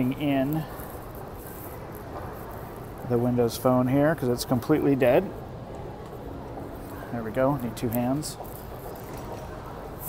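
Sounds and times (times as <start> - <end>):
airport terminal hum and hiss: 0.0 - 10.0.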